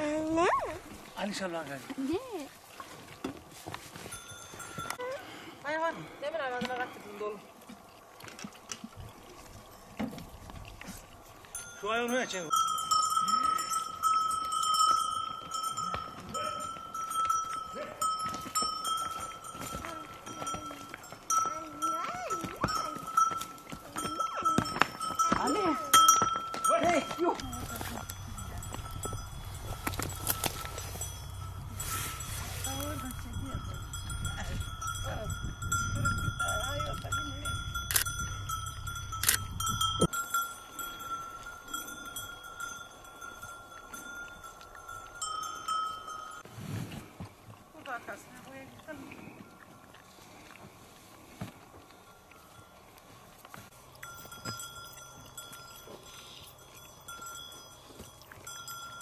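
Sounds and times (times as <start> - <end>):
livestock bells ringing: 4.0 - 5.9, 11.4 - 46.5, 53.7 - 59.0
low rumble: 27.5 - 40.0.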